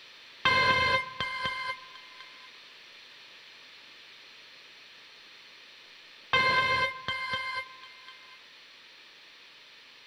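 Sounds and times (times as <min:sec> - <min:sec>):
faint steady hiss: 0:00.0 - 0:10.0
thin held electronic tone: 0:00.5 - 0:02.5, 0:06.4 - 0:08.4.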